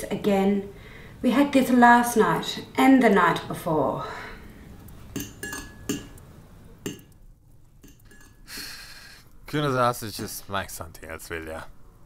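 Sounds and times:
cutlery clinking on plate: 0:05.2 - 0:06.2, 0:07.8 - 0:08.5.

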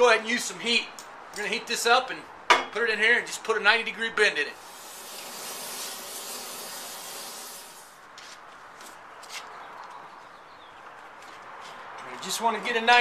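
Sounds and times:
torch flame hissing: 0:04.6 - 0:08.0.

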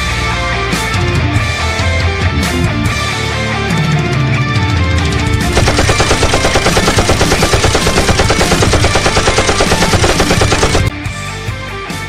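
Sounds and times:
rock music: 0:00.0 - 0:10.1, 0:10.7 - 0:12.0
machine-gun fire: 0:05.5 - 0:10.9.

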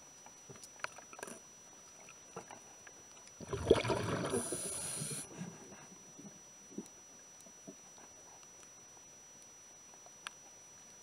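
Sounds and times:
underwater air bubbles gurgling: 0:03.4 - 0:05.3.

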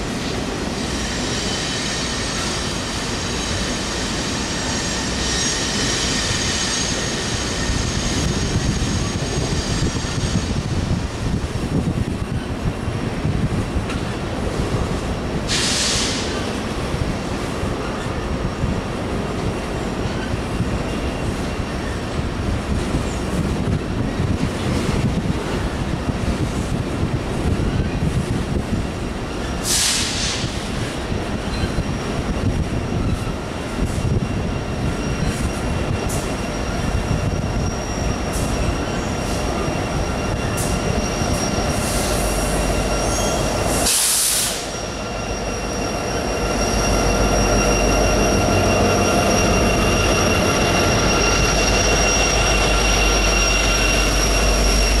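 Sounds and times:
diesel locomotive engine rumble: 0:00.0 - 0:55.0
wheel squeal: 0:00.8 - 0:10.9, 0:29.3 - 0:55.0
high hiss bursts: 0:43.7 - 0:45.0.

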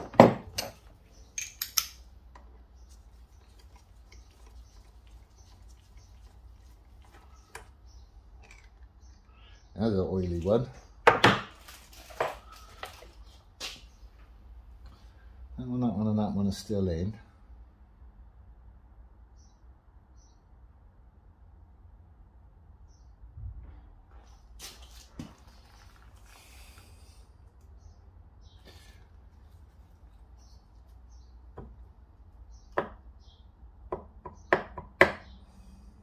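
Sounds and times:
metal engine parts clicking: 0:00.5 - 0:02.5.

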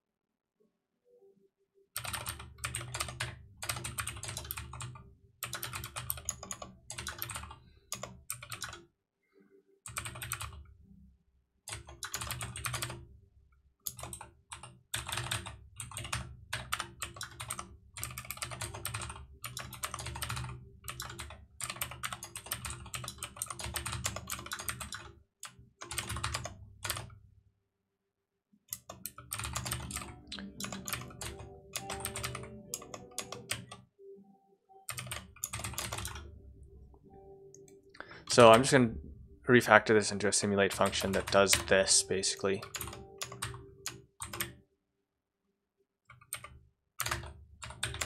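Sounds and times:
typing on computer keyboard: 0:02.0 - 0:08.8, 0:09.9 - 0:10.6, 0:11.7 - 0:13.0, 0:13.8 - 0:27.1, 0:28.7 - 0:33.8, 0:34.9 - 0:36.3, 0:40.6 - 0:44.6, 0:46.1 - 0:48.0.

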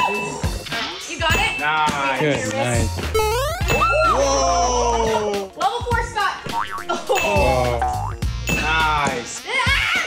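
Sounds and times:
upbeat background music: 0:00.0 - 0:10.0
cartoon sweeping sound effects: 0:06.5 - 0:07.4.

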